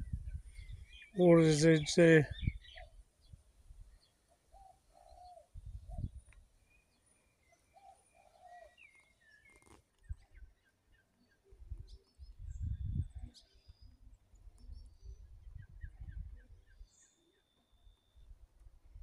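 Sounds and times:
small birds chirping: 0.0s - 18.3s.

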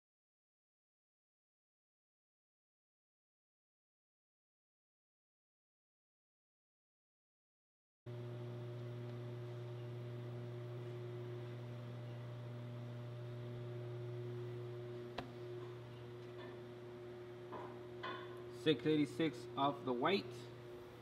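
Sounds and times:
low electrical hum: 8.1s - 21.0s.

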